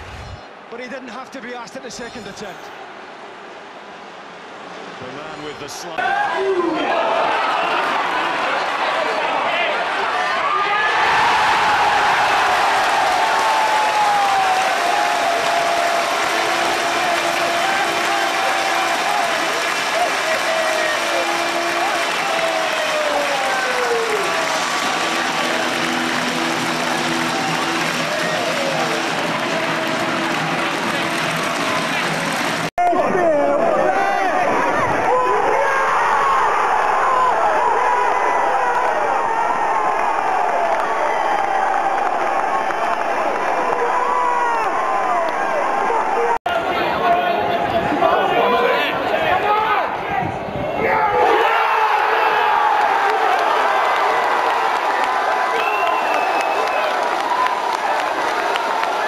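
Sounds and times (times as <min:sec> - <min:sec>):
football crowd cheering: 0:00.0 - 0:59.0
fans shouting: 0:00.5 - 0:59.0.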